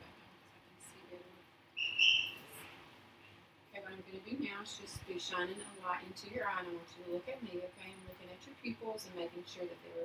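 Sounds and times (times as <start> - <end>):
high-pitched chirp: 1.8 - 2.4.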